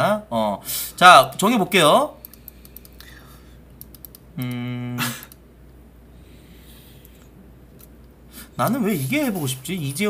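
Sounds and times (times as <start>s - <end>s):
computer mouse clicks: 2.2s - 3.1s, 3.8s - 4.6s.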